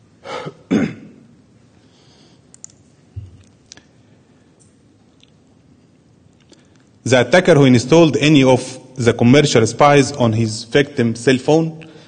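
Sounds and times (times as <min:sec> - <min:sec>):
man clearing his throat: 0:00.3 - 0:01.3.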